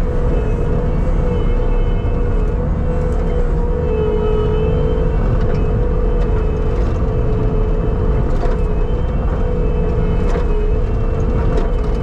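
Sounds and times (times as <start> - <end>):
track loader engine rumble: 0.0 - 12.0.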